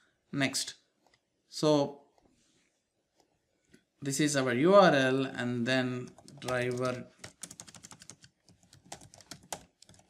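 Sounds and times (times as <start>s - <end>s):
keyboard typing: 6.0s - 10.0s.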